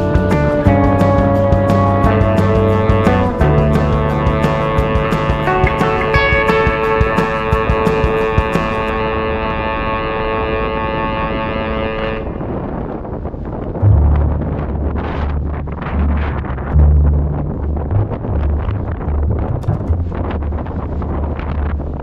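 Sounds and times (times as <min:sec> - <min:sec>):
tyres rolling over rough asphalt: 0:00.0 - 0:09.0
held music chord: 0:00.0 - 0:12.6
wind buffeting microphone: 0:00.0 - 0:22.0.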